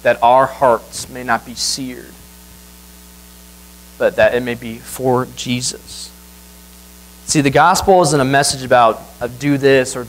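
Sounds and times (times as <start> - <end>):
electrical mains hum: 0.0 - 10.0
faint microphone hiss: 0.0 - 10.0.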